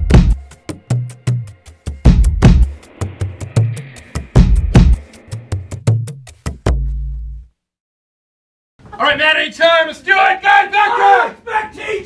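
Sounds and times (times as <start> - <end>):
team shouting a cheer: 10.1 - 12.0.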